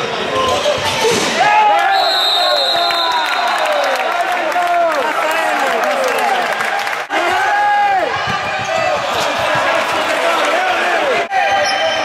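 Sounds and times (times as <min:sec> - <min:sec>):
ball bouncing on wooden court: 0:08.1 - 0:09.8.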